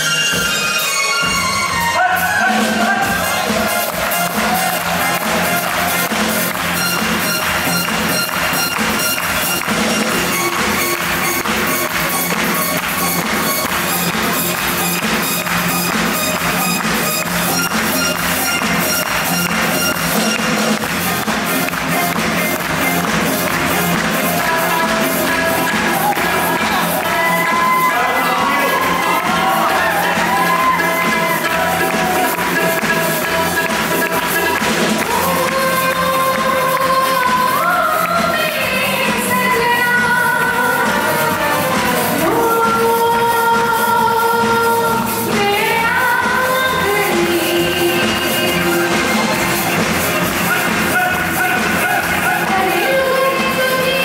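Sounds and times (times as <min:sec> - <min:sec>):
live band playing: 0:00.0 - 0:54.0.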